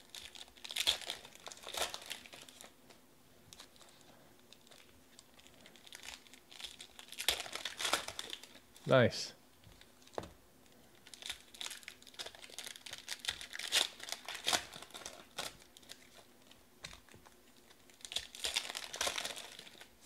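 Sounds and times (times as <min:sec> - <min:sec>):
foil wrappers crinkling and tearing: 0:00.0 - 0:02.8, 0:03.5 - 0:08.8, 0:09.7 - 0:20.0.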